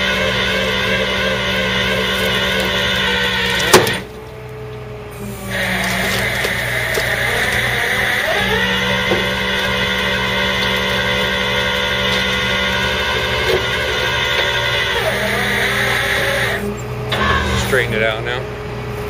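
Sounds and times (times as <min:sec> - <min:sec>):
truck engine running: 0:00.0 - 0:19.0
winch whining: 0:00.0 - 0:19.0.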